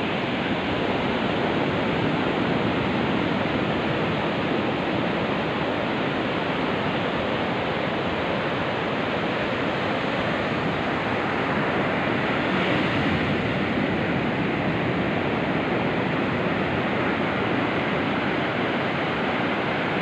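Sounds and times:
ocean surf roaring: 0.0s - 20.0s.

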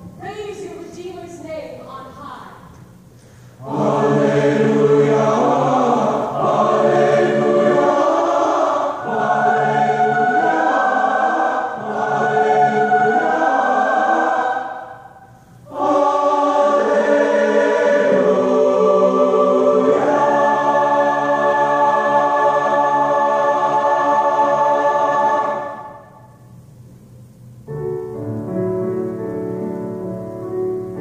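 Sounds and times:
choir singing a hymn: 3.6s - 26.6s.

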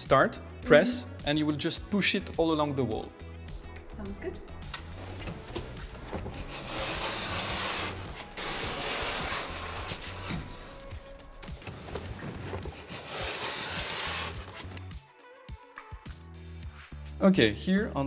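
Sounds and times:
background music: 0.0s - 18.0s
blade scraping through vinyl: 5.8s - 14.8s.

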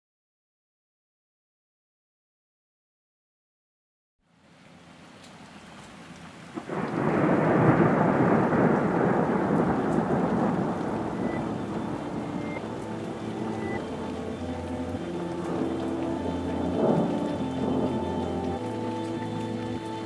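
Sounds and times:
heavy rain: 4.3s - 20.0s
thunder crack: 6.6s - 14.0s, 16.7s - 18.3s
soft held musical tones: 10.8s - 20.0s.

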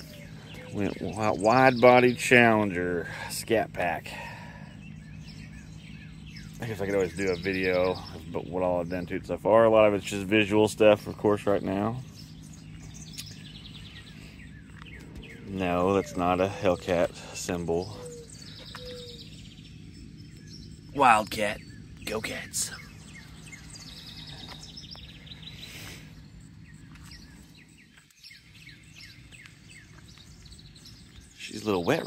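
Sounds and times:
faint birds chirping: 0.0s - 32.0s
low outdoor background hum: 0.0s - 32.0s.

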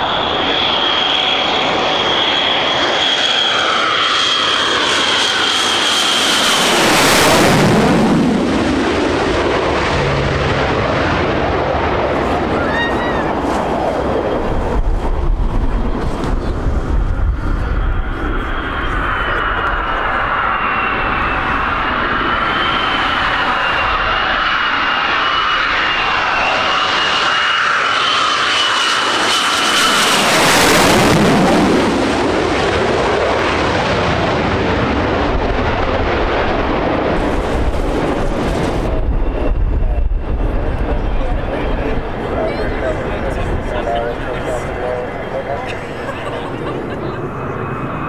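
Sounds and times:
jet engine whine: 0.0s - 48.0s
jet rumble: 0.0s - 48.0s.

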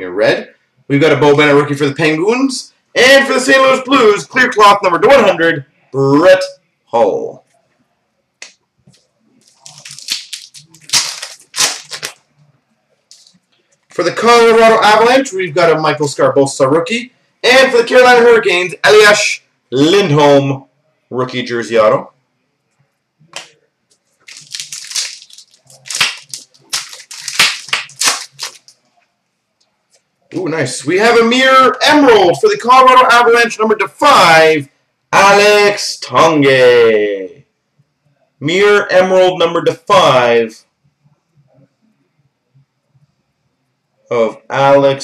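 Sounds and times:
wrapper crinkling and tearing: 9.4s - 12.2s, 24.2s - 28.8s.

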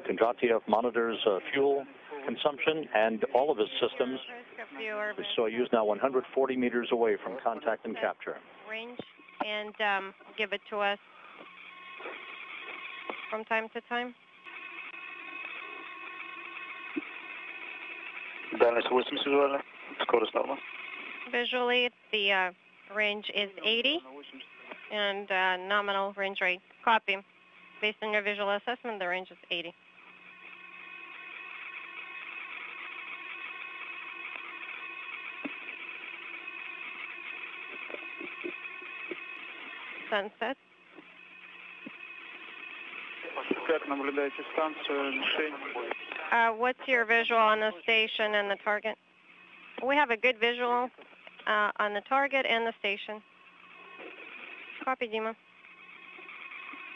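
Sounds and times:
voice over radio: 0.0s - 11.0s, 18.5s - 20.6s, 21.3s - 27.1s, 43.2s - 49.0s
faint steady tones: 0.0s - 56.9s
low hum: 0.0s - 56.9s
radio hiss: 0.0s - 56.9s.

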